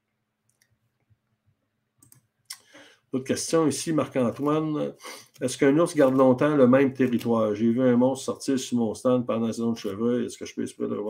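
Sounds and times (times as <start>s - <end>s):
computer mouse clicks: 2.0s - 2.6s.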